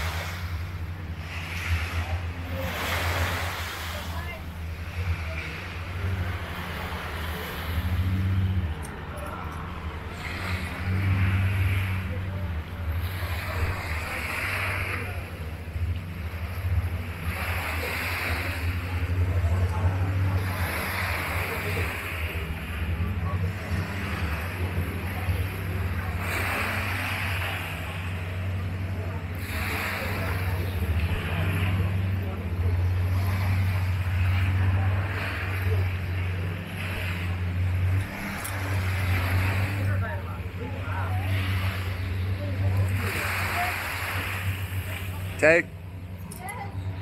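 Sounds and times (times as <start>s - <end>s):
low motor drone: 0.0s - 47.0s
waves surf: 0.0s - 47.0s.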